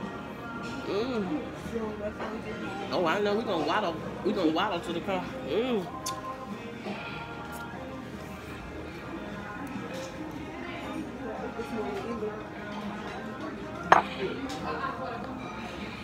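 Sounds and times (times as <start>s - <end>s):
murmur of voices: 0.0s - 16.0s
restaurant music: 0.0s - 16.0s
cutlery and dishes clinking: 11.9s - 14.7s.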